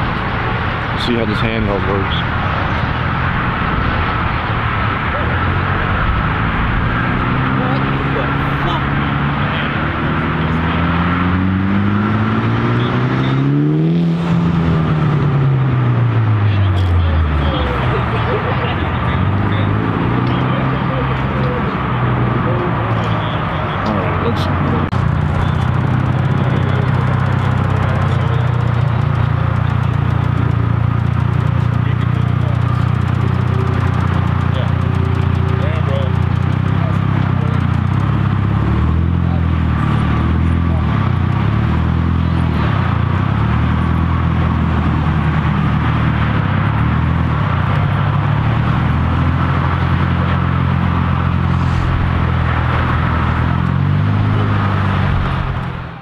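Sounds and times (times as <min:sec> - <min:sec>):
car engine running: 0:00.0 - 0:56.0
faint voices: 0:04.0 - 0:11.3, 0:16.1 - 0:43.5, 0:47.2 - 0:56.0.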